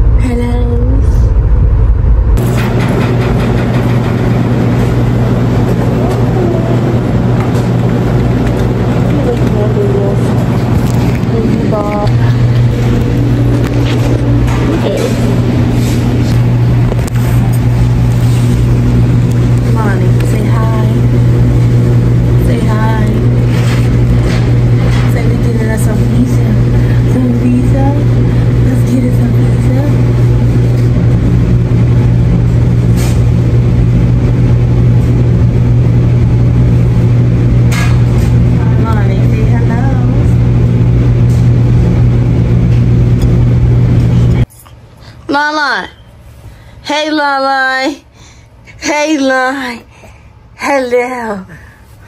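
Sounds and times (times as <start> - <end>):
low mechanical hum: 0.0 - 52.0.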